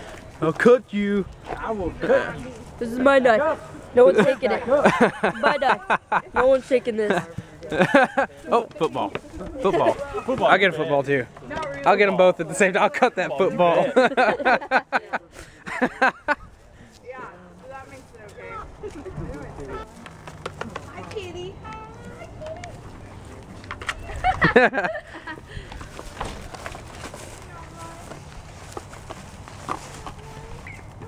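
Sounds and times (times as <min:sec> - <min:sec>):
faint voices: 0:00.0 - 0:31.0
people laughing: 0:04.0 - 0:08.6, 0:12.9 - 0:16.6, 0:18.8 - 0:19.6, 0:23.9 - 0:25.7
dog rustling in dry grass: 0:16.5 - 0:20.0, 0:25.9 - 0:31.0.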